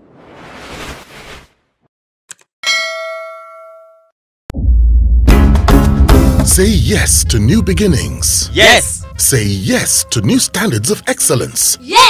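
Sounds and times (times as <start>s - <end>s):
metallic ding ringing out: 2.6s - 4.1s.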